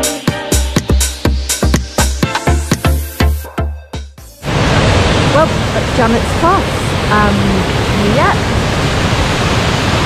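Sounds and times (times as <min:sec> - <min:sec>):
waterfall rushing: 0:04.4 - 0:10.0.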